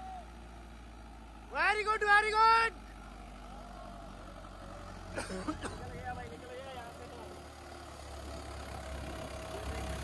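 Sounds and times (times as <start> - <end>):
tractor diesel engine under load: 0.0 - 10.0.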